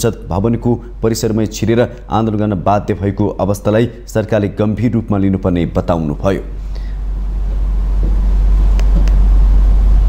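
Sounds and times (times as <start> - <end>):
deep steady hum: 0.0 - 10.0.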